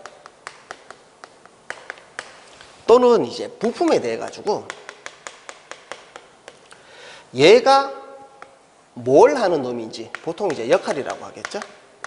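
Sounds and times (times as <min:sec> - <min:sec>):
chalk writing on chalkboard: 0:00.0 - 0:02.5, 0:03.7 - 0:06.6.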